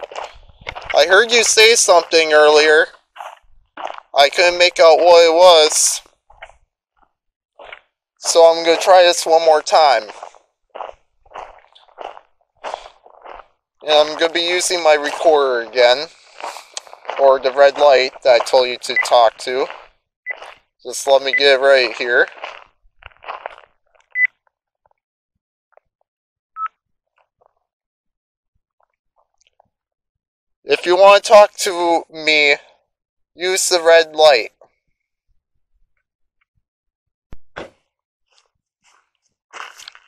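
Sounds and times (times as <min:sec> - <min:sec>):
soft footsteps: 0:00.0 - 0:01.0, 0:09.9 - 0:13.5, 0:14.2 - 0:20.6
electronic beeps: 0:18.7 - 0:19.3.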